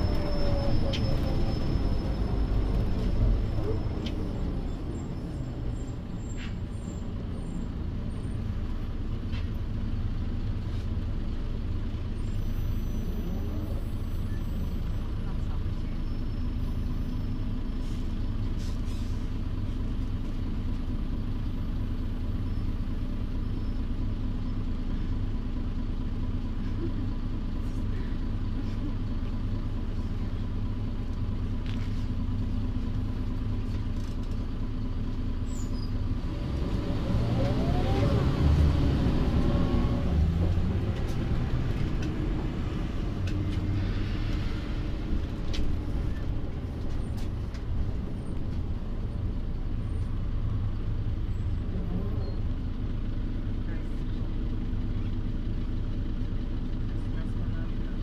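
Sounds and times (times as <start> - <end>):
bus diesel engine idling: 0.0 - 58.0.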